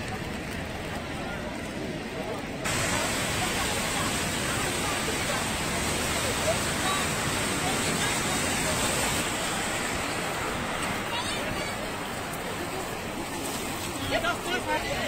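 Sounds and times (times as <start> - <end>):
rain falling: 0.0 - 15.0.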